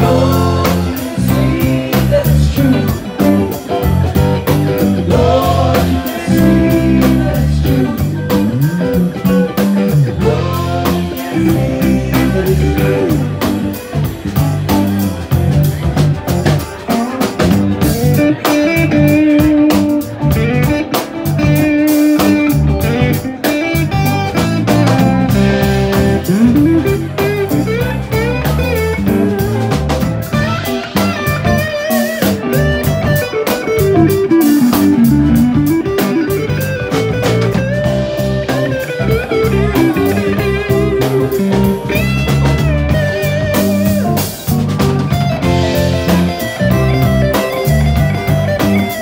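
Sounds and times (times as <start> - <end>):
drum kit: 0.0 - 49.0
electric bass: 0.0 - 49.0
electric guitar lead line: 0.0 - 49.0.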